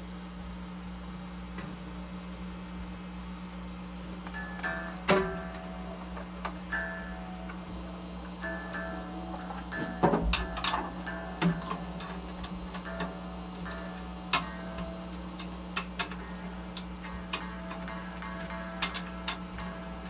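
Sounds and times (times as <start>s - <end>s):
low hum: 0.0s - 20.0s
soft guitar notes: 4.3s - 20.0s.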